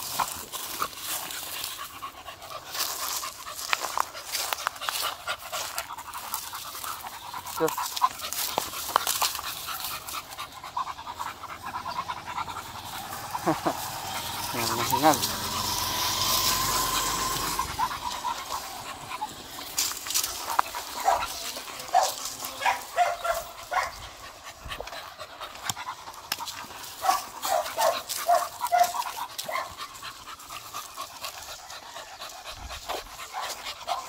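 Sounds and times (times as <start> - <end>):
dog panting: 0.0 - 34.0.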